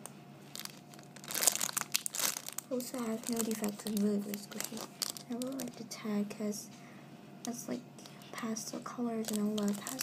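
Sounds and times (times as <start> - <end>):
plastic bag crinkling: 0.4 - 6.0, 7.4 - 10.0.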